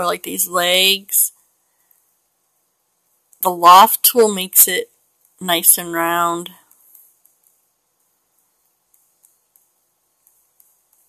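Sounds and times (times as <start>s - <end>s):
pen stylus tapping on tablet: 6.7s - 11.0s.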